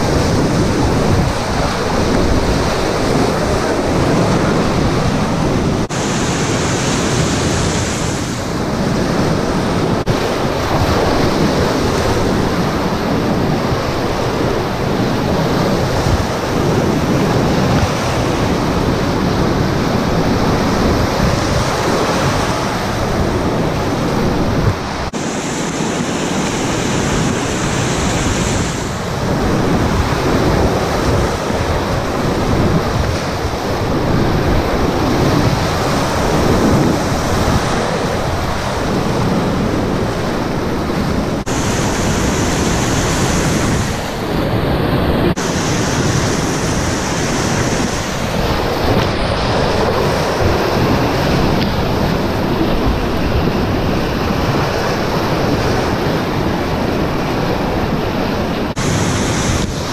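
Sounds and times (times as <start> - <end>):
whitewater rapids rushing: 0.0 - 59.9.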